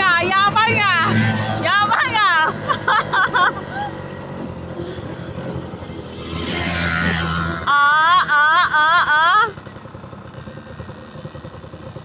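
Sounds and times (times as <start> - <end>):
motorbike engine running: 0.0 - 12.0.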